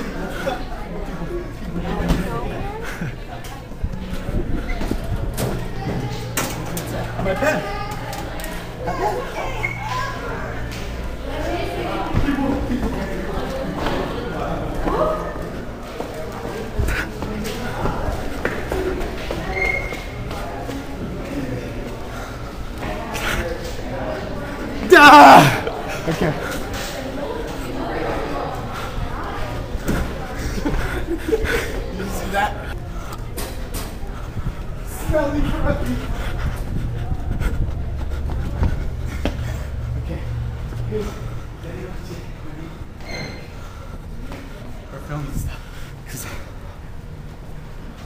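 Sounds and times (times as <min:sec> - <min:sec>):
short high squeak: 0:19.5 - 0:20.0, 0:43.0 - 0:43.5.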